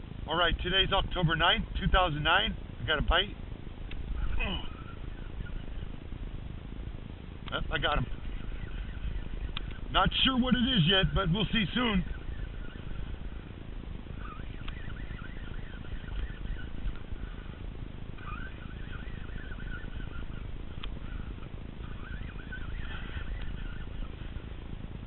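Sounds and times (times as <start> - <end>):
wind rumble on microphone: 0.0 - 25.0
high wavering squeaks: 7.9 - 17.6, 18.2 - 24.5
sharp clicks: 9.4 - 9.8, 14.6 - 14.9.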